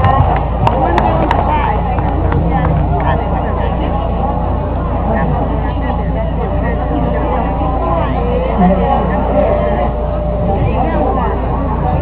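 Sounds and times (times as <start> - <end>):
low steady hum: 0.0 - 12.0
many voices: 0.0 - 12.0.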